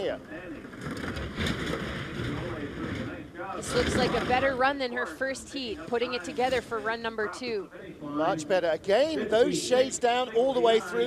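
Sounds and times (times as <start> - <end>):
bobsleigh runners rushing on ice: 0.7 - 5.1.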